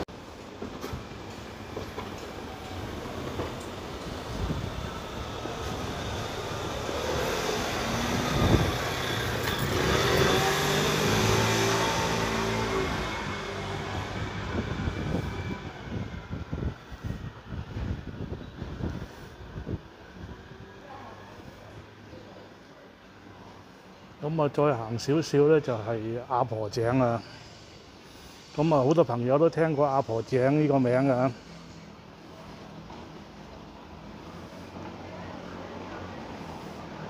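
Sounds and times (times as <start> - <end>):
vehicle passing by: 5.7 - 16.1, 34.0 - 37.0.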